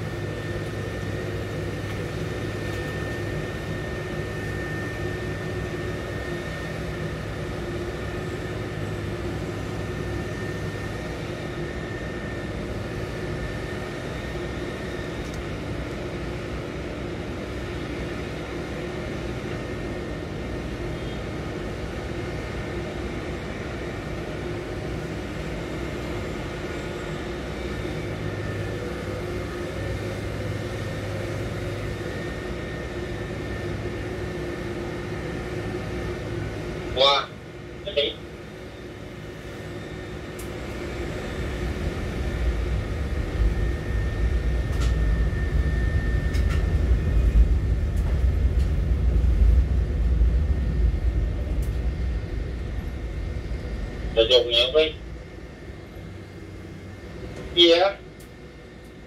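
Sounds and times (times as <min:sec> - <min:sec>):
crane machinery humming and whining: 0:00.0 - 0:59.0.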